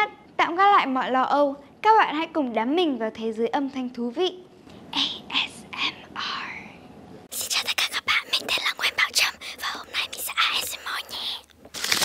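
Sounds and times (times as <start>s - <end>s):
person whispering into microphone: 4.9s - 11.5s.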